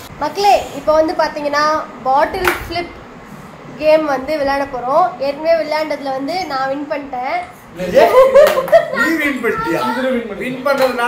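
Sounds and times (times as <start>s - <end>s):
sharp slap: 2.4s - 2.7s
excited voices calling out: 8.0s - 10.3s.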